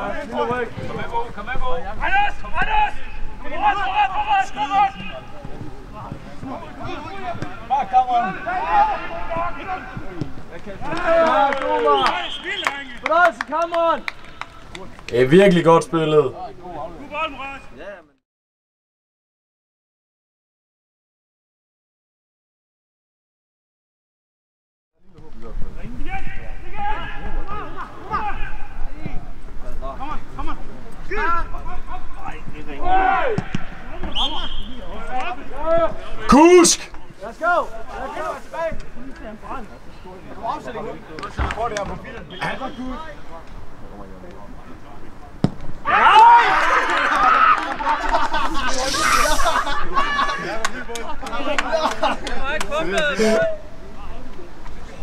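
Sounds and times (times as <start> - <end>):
players calling and shouting: 0.0 - 18.0, 25.8 - 54.3
players calling out: 32.8 - 37.2, 42.1 - 43.2
person calling out: 36.3 - 36.9.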